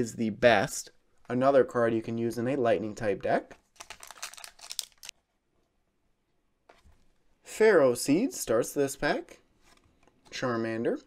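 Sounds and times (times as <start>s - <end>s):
foil wrapper crinkling and tearing: 3.7s - 5.2s.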